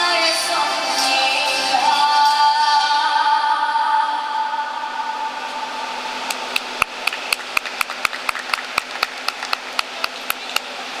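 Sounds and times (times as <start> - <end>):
scattered applause: 6.5 - 11.0.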